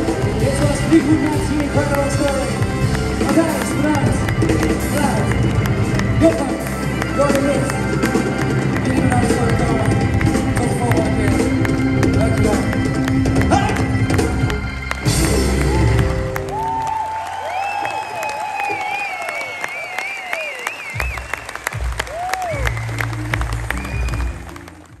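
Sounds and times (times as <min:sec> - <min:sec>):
live band playing: 0:00.0 - 0:17.2, 0:20.3 - 0:25.0
audience clapping and cheering: 0:00.0 - 0:25.0
shrill whistles: 0:17.5 - 0:23.1, 0:23.7 - 0:24.5.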